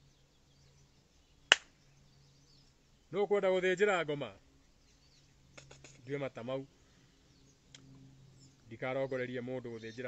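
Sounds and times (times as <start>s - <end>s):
sharp snap: 1.5s - 1.8s.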